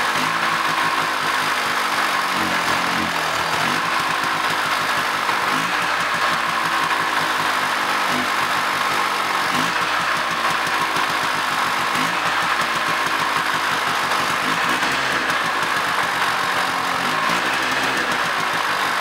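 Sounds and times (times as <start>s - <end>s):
snowmobile engine revving: 0.0s - 19.0s.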